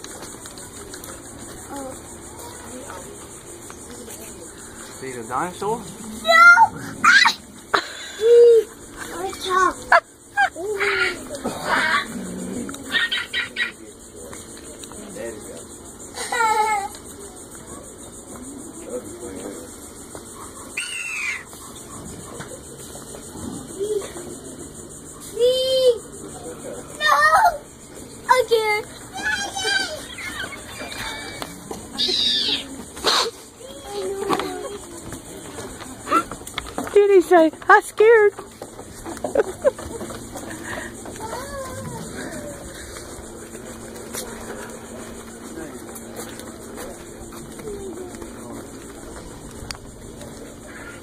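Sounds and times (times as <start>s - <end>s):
faint voices of adults and children: 0.0s - 51.0s
open-air background hiss: 0.0s - 51.0s.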